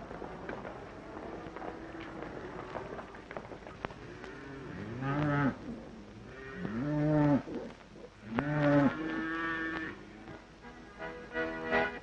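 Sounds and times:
cattle mooing: 8.3s - 10.0s.

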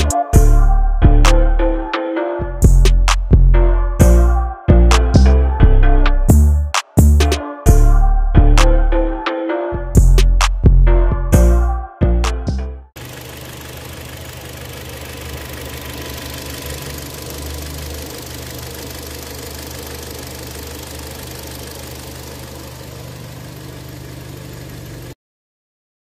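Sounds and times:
car engine idling: 13.0s - 25.2s.

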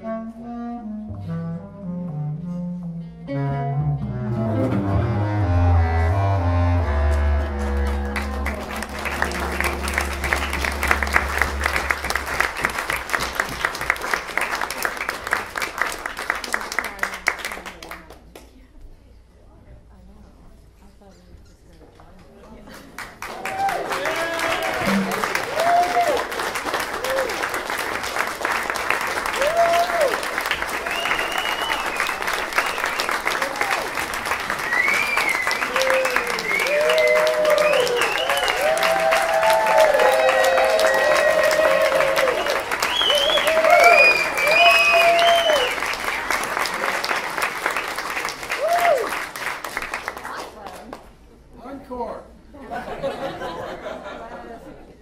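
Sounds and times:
audience applause: 7.4s - 18.3s, 22.8s - 51.0s
cheering and whooping voices: 23.2s - 27.6s, 29.2s - 32.0s, 34.6s - 47.0s, 48.5s - 49.2s.

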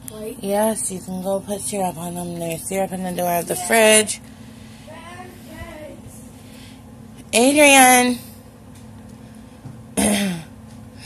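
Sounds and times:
woman clearing her throat: 10.0s - 10.5s.

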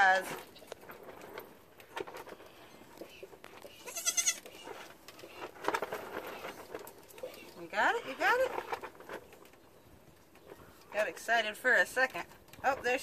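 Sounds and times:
goat kid bleating: 3.8s - 4.6s.

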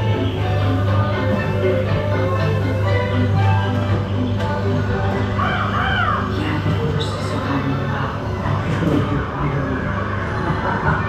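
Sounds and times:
dark ride soundtrack music: 0.0s - 11.0s.

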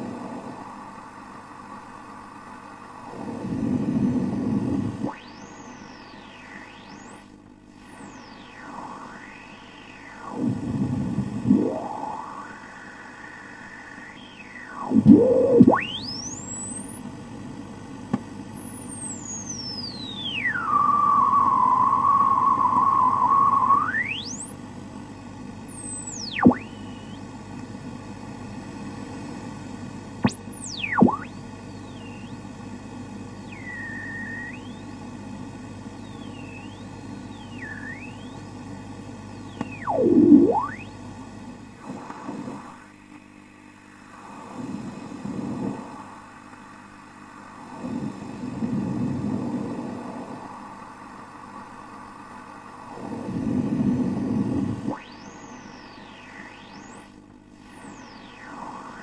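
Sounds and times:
radio static hiss: 0.0s - 59.0s
interference whistles sweeping: 3.1s - 17.2s, 18.3s - 24.7s, 25.6s - 27.3s, 30.2s - 35.2s, 35.8s - 41.0s, 54.1s - 59.0s.

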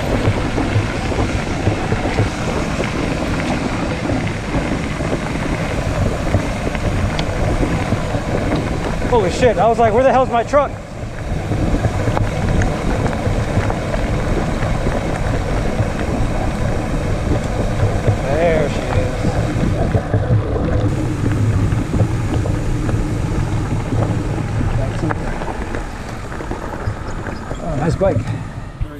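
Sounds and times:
bike tyres rolling on gravel: 0.0s - 28.9s
wind buffeting microphone: 0.0s - 28.9s.

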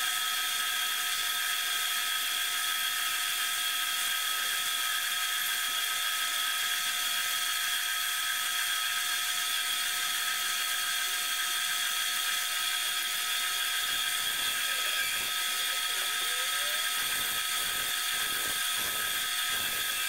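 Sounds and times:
lathe whine: 0.0s - 20.0s
turning tool cutting hiss: 9.8s - 20.0s.

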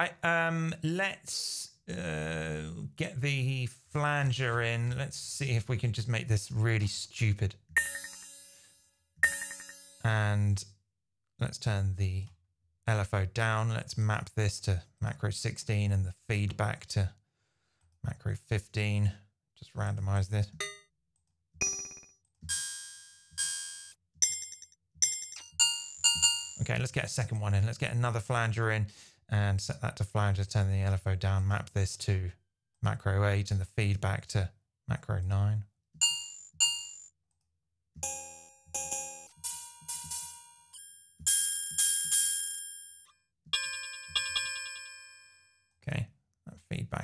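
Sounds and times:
metallic electronic clang hits: 7.8s - 10.1s
metallic electronic drum hits: 21.6s - 22.8s.

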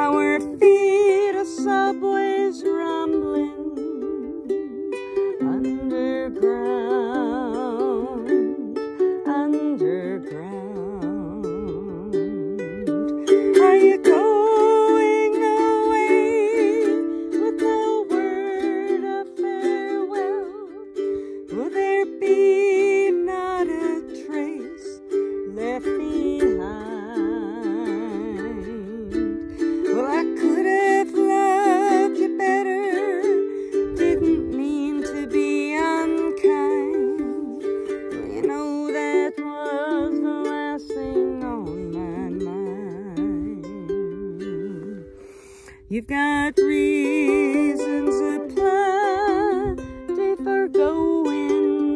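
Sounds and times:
stringed instrument strummed: 0.0s - 51.9s
wordless vocal melody with vibrato: 0.0s - 51.9s.

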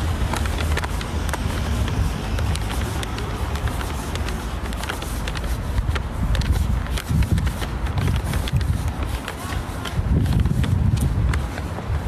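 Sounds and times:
footsteps: 0.0s - 12.0s
microphone handling noise: 0.0s - 12.0s
wind rumble: 0.0s - 12.0s.

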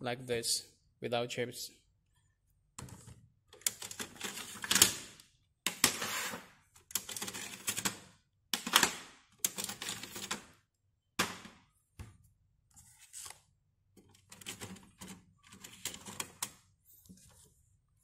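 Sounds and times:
plastic cartridges clicking and rattling: 6.8s - 8.0s.

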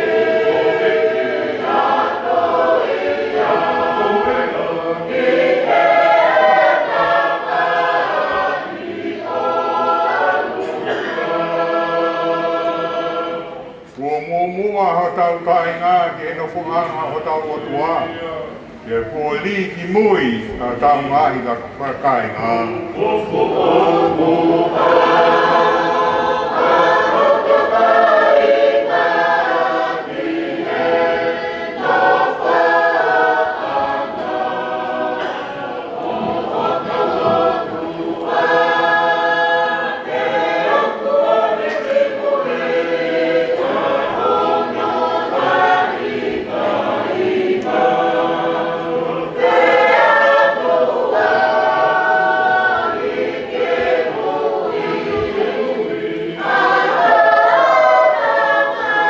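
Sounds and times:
group singing a hymn unaccompanied: 0.0s - 59.0s.

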